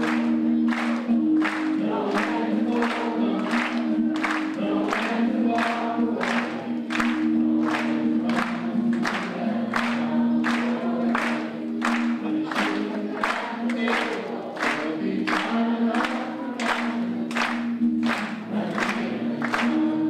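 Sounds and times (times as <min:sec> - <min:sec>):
acoustic guitar strumming: 0:00.0 - 0:20.0
person singing long notes: 0:00.0 - 0:20.0.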